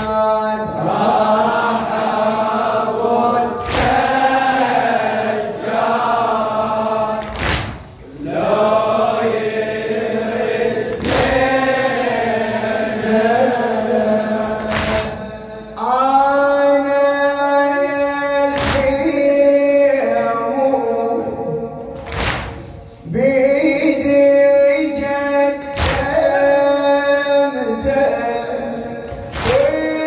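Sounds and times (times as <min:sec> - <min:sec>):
man chanting through microphone: 0:00.0 - 0:07.2, 0:10.0 - 0:30.0.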